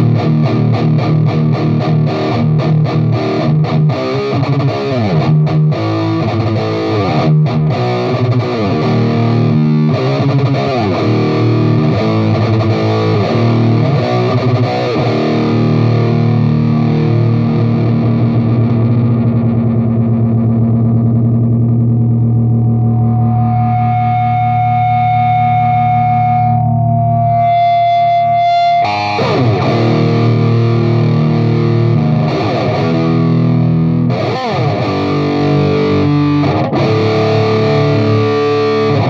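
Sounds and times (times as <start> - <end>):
distorted electric guitar: 0.0 - 39.0
high steady tone: 22.0 - 29.8.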